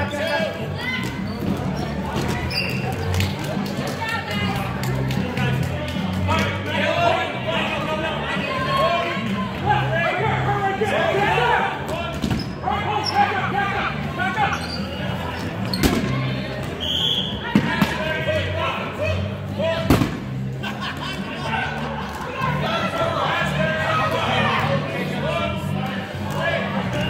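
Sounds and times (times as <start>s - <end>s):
players' voices: 0.0s - 27.0s.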